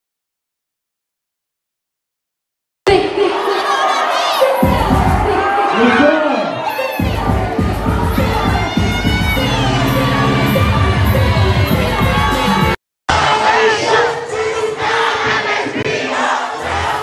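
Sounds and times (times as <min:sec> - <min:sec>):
people shouting and cheering: 0:02.9 - 0:17.0
loud music with heavy bass: 0:04.6 - 0:05.9, 0:06.7 - 0:12.8.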